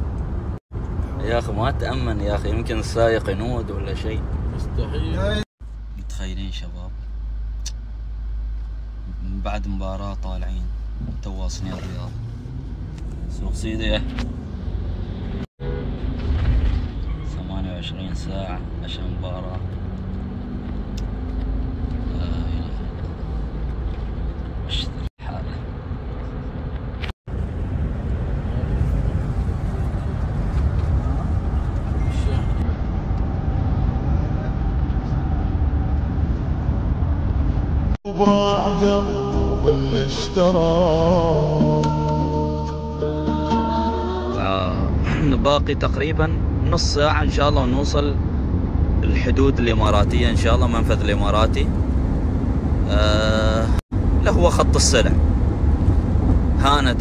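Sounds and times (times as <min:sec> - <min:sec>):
car cabin road and engine noise: 0:00.0 - 0:38.0, 0:44.3 - 0:57.0.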